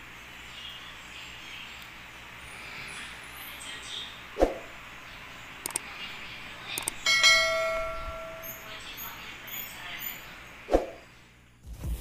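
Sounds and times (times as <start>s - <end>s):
sharp click: 5.6s - 5.8s, 6.8s - 7.0s
bell chime: 7.0s - 8.9s.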